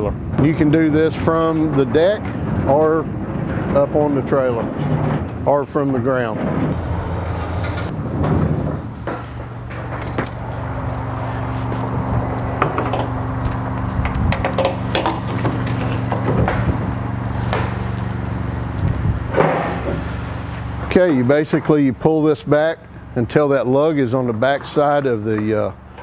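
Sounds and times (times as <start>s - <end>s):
metal rollers clanking in track: 0.0s - 26.0s
steady low hum: 0.0s - 26.0s.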